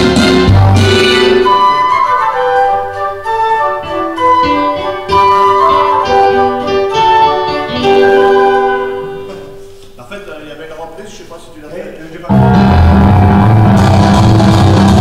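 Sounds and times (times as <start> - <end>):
keyboard melody over chords: 0.0 - 9.8, 12.3 - 15.0.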